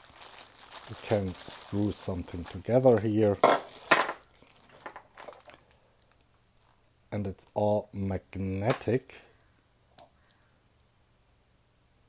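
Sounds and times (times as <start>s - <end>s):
plastic bag crinkling: 0.0s - 6.8s.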